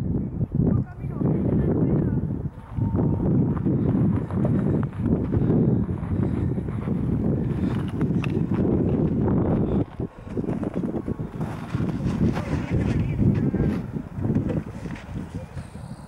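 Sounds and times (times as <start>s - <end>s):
wind buffeting microphone: 0.0s - 16.0s
footsteps crunching in snow: 3.6s - 13.9s.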